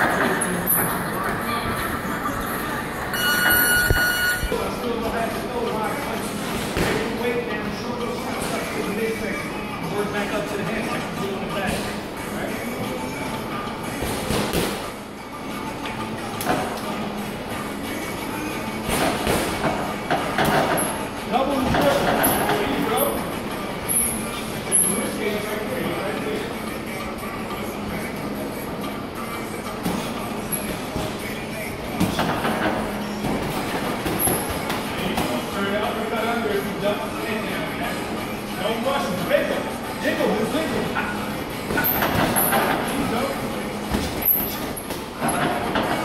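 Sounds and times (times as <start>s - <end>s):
indistinct voices: 0.0s - 14.0s
faint voices: 0.0s - 46.0s
gym hubbub: 0.0s - 46.0s.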